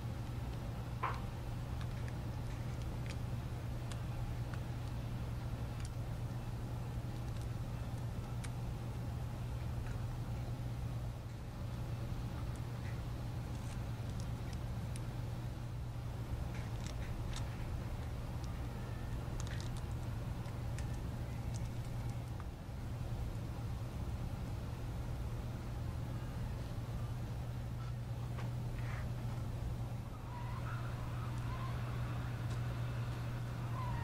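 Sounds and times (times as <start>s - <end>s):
steady low hum: 0.0s - 34.0s
small clicks and rustles: 0.2s - 5.0s, 7.0s - 8.6s, 12.4s - 15.1s, 16.4s - 22.5s.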